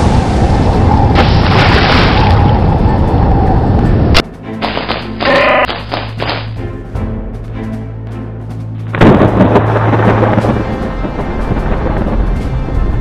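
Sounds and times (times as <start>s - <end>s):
crashing sea: 0.0s - 4.2s
wind: 0.0s - 13.0s.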